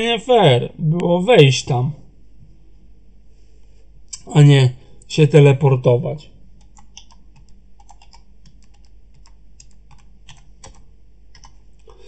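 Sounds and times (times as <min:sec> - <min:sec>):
typing on keyboard: 0:06.6 - 0:12.0.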